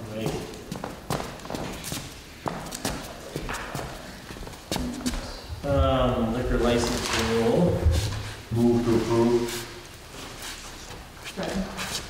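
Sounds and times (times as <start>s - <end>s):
footsteps on wooden floor: 0.2s - 6.2s, 6.9s - 8.4s.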